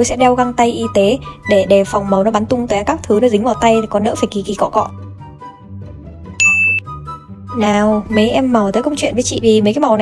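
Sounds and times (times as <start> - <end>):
quiet background music: 0.0 - 10.0
bell-like ding: 6.4 - 6.8.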